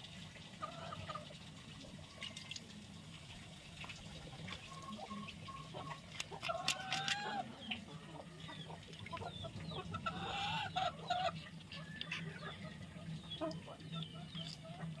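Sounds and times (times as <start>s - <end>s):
chickens clucking: 0.6s - 1.4s, 4.1s - 15.0s.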